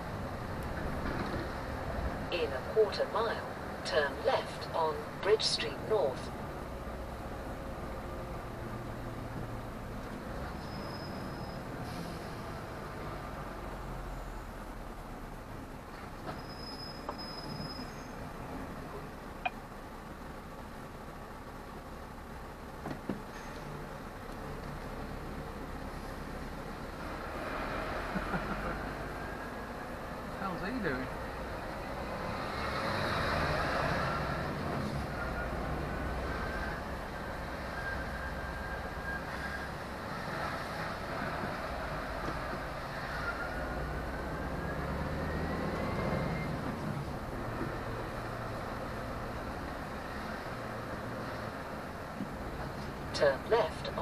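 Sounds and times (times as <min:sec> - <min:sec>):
road noise on wet street: 0:00.0 - 0:54.0
lorry engine: 0:24.0 - 0:54.0.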